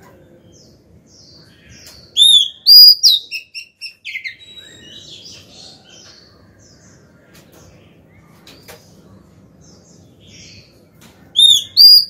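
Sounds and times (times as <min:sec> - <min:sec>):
bird whistling and twittering: 0:01.7 - 0:05.4, 0:11.4 - 0:12.0.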